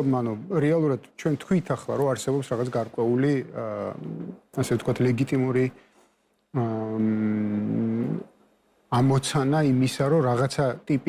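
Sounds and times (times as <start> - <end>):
man speaking: 0.0 - 5.8, 6.6 - 8.3, 8.9 - 11.0.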